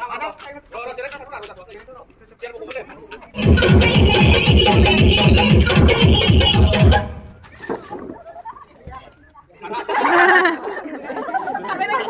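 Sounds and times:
people shouting and chattering: 0:02.7 - 0:12.0.

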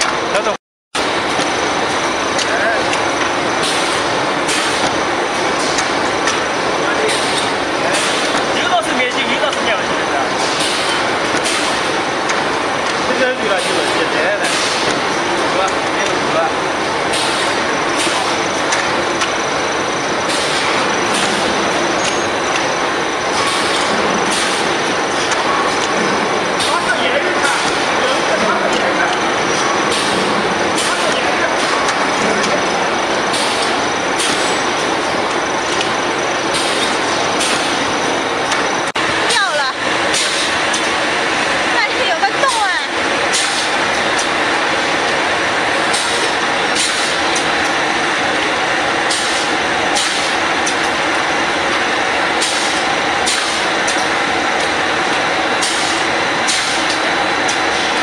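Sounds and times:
production line clatter and hum: 0:00.0 - 0:58.0
indistinct voices: 0:02.2 - 0:58.0.

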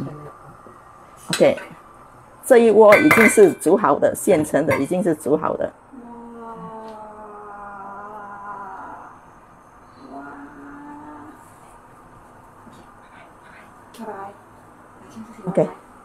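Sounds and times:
woman humming long notes: 0:05.9 - 0:09.2, 0:10.0 - 0:11.5.

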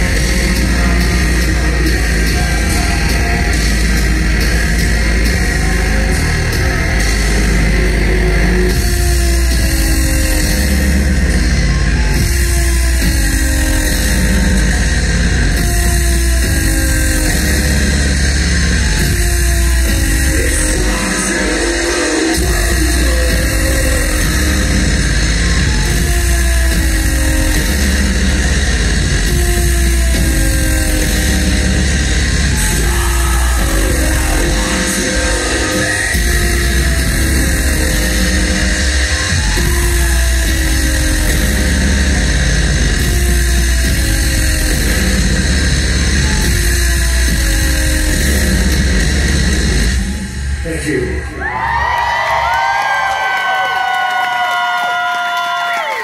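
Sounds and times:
live industrial metal band: 0:00.0 - 0:51.1.

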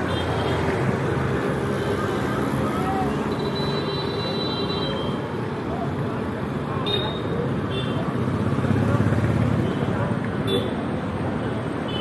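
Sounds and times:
motorcycles and scooters passing: 0:00.0 - 0:04.4, 0:05.2 - 0:11.9
voices of passers-by: 0:00.0 - 0:12.0.

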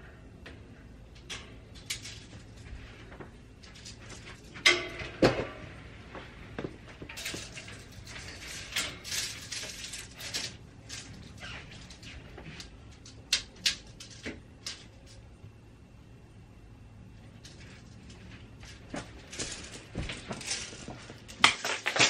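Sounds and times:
metal shelving clicks and rattles: 0:00.0 - 0:05.8, 0:06.6 - 0:15.4, 0:17.2 - 0:22.0.

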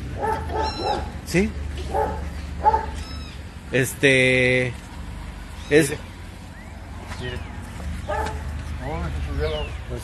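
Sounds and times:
high-pitched animal cries: 0:00.4 - 0:01.2, 0:02.7 - 0:03.5.

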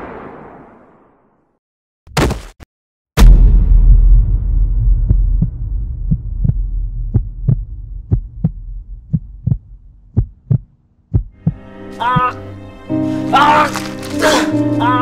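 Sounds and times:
deep rumble: 0:03.2 - 0:11.4
heartbeat thumps: 0:04.0 - 0:12.3.

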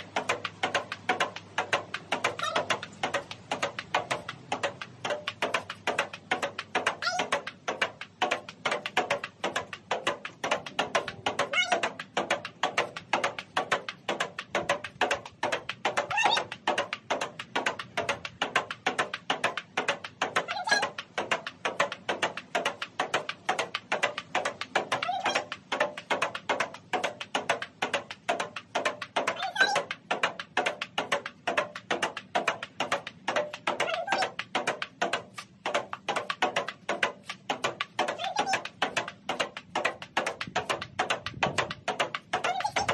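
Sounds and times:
table tennis ball hitting paddle: 0:00.0 - 0:42.9.

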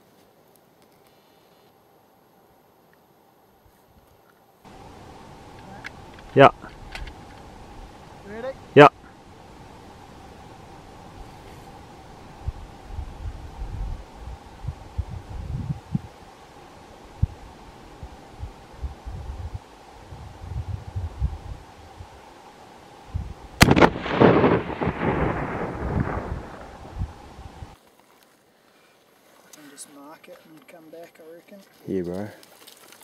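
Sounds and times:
echo off hills: 0:21.7 - 0:27.8
rifle shot: 0:23.6 - 0:26.6.

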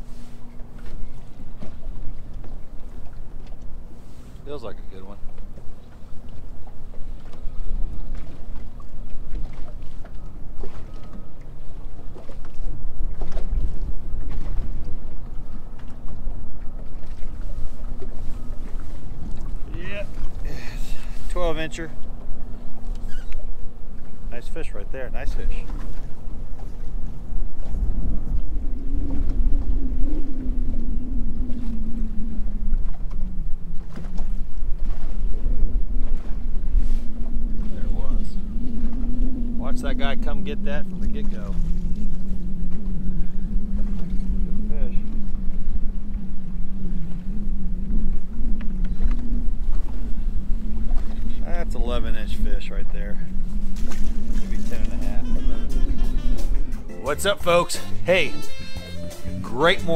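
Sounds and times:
water lapping against boat hull: 0:00.0 - 0:59.9
wind buffeting microphone: 0:00.0 - 0:59.9
faint steady hum: 0:26.1 - 0:59.9.

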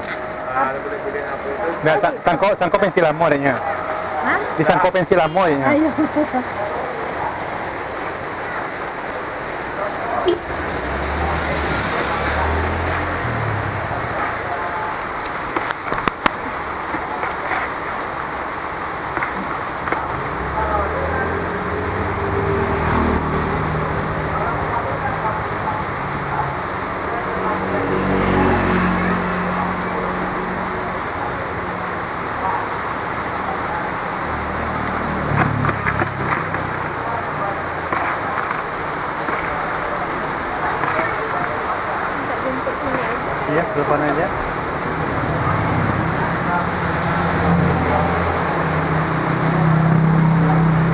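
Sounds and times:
hubbub of voices: 0:00.0 - 0:50.9
motor vehicles passing: 0:00.0 - 0:50.9.

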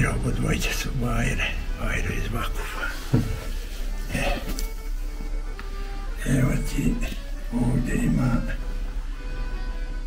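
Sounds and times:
man's voice: 0:00.0 - 0:03.4, 0:04.1 - 0:04.7, 0:06.2 - 0:08.6
background music: 0:00.0 - 0:10.0.

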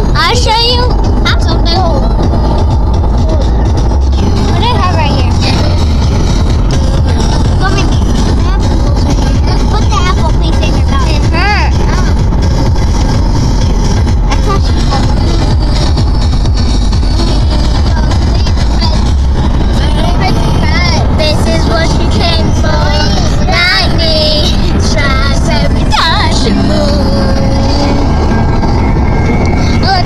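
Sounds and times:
car road rumble: 0:00.0 - 0:30.0.

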